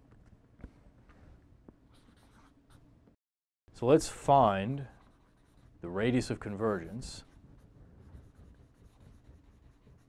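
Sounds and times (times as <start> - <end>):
marker writing on a board: 4.8 - 5.8, 6.5 - 10.0.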